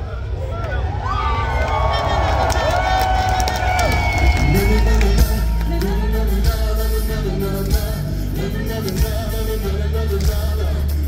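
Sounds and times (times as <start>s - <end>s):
concert crowd: 0.0s - 11.0s
voices singing a long note: 1.7s - 11.0s
booming bass: 3.8s - 11.0s.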